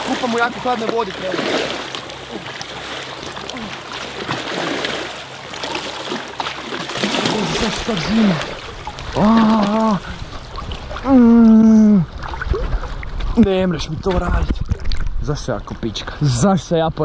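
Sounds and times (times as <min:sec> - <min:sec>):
water splashing around swimmer: 0:00.0 - 0:15.8
person crying out: 0:09.2 - 0:10.2, 0:11.0 - 0:12.1.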